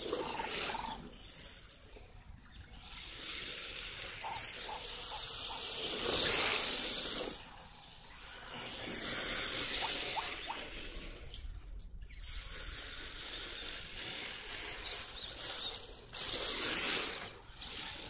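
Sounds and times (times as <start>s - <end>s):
tyres sliding on asphalt: 12.6s - 18.0s.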